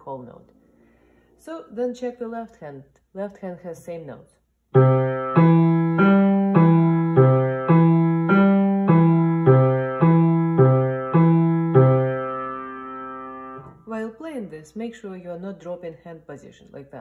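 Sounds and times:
low piano notes: 0:04.8 - 0:13.8.

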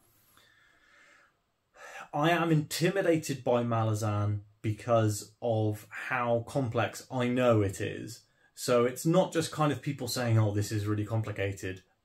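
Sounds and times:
man breathing faintly: 0:00.0 - 0:02.2
quick in-breath: 0:00.1 - 0:02.1.

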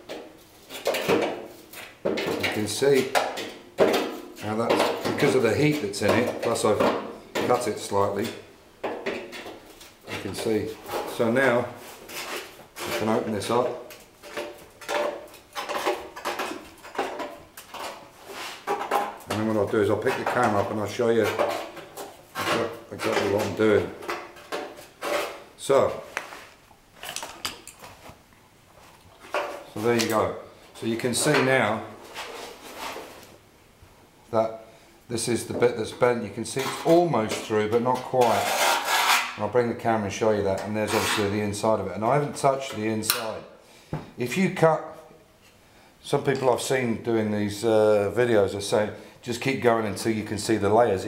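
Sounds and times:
short metal rasp: 0:38.2 - 0:39.4.

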